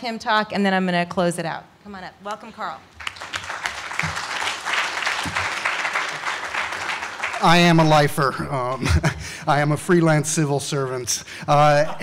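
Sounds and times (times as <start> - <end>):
audience applauding: 3.0 - 9.1.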